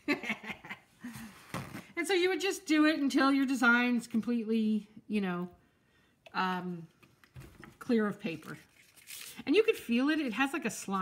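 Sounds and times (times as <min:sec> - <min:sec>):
woman laughing: 0:00.0 - 0:01.4.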